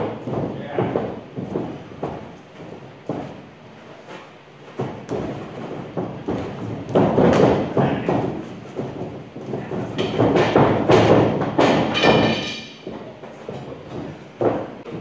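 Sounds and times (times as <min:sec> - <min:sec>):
feet landing on ring mat: 0:00.0 - 0:15.0
heavy footfalls on padded floor: 0:00.0 - 0:15.0.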